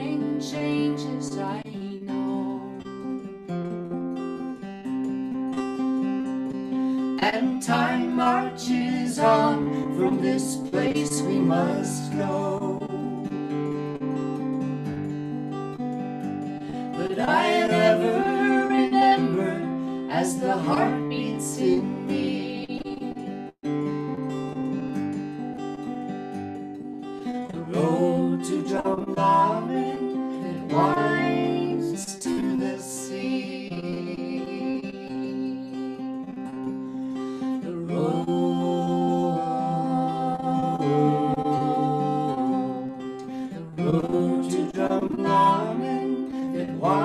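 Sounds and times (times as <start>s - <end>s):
woman singing: 0.0s - 3.3s, 7.0s - 13.3s, 16.7s - 23.5s, 27.5s - 36.3s, 37.4s - 43.2s, 43.8s - 47.0s
acoustic guitar picking: 0.0s - 47.0s.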